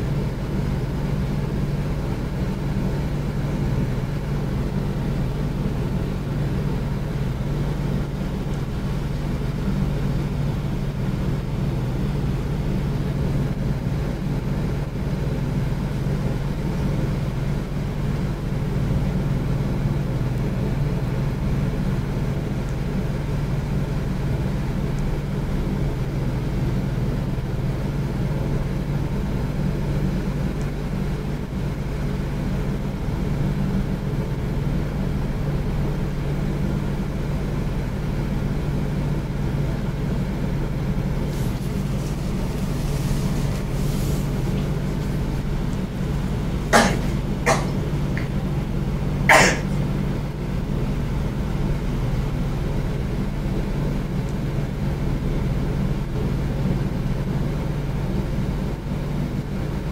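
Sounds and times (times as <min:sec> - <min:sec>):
low mechanical hum: 0:00.0 - 0:59.9.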